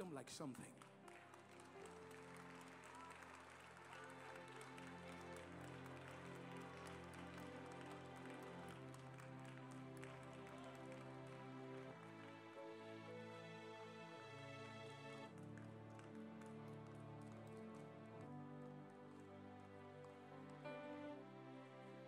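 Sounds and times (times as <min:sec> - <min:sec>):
soft sustained keyboard chords: 0:00.0 - 0:22.0.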